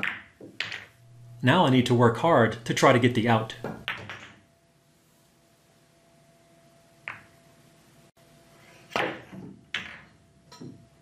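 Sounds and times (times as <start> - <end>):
billiard balls clicking: 0.0 - 1.0, 2.7 - 4.4, 7.0 - 7.4, 9.0 - 10.2
cue knocking ball: 3.5 - 4.4, 7.1 - 7.3, 9.0 - 10.1.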